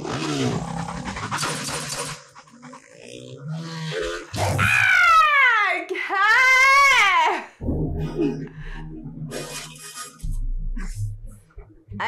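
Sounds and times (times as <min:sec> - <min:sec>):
motorcycle chase action sounds: 0:00.0 - 0:04.4
woman shrieking: 0:04.6 - 0:07.4
woman laughing: 0:08.0 - 0:08.5.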